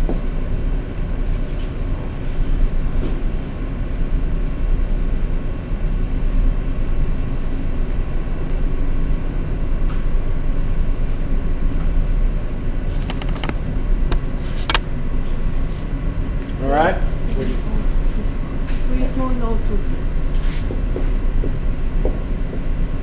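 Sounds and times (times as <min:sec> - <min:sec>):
low room rumble: 0:00.0 - 0:23.0.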